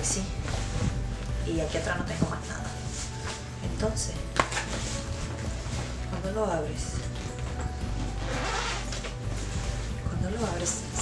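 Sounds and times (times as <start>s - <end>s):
background music with bass line: 0.0s - 11.0s
zipper pulled open: 8.0s - 9.8s.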